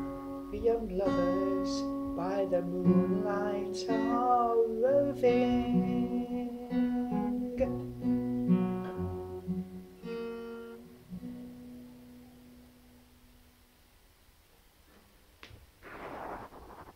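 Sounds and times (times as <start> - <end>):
acoustic guitar chords: 0.0 - 13.6.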